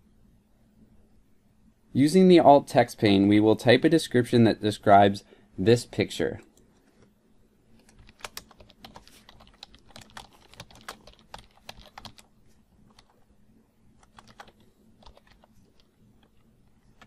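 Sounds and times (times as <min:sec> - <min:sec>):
typing on computer keyboard: 0:07.8 - 0:12.3, 0:12.9 - 0:13.2, 0:14.0 - 0:17.0.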